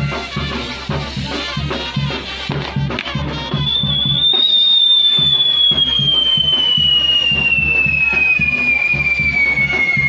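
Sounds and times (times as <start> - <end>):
firework whistle falling in pitch: 2.5 - 10.0.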